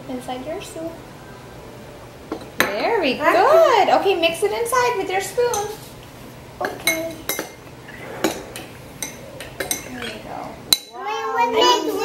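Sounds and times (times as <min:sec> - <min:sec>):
spoons clinking against ceramic bowls: 0:05.4 - 0:05.8, 0:06.6 - 0:07.7, 0:08.3 - 0:11.0.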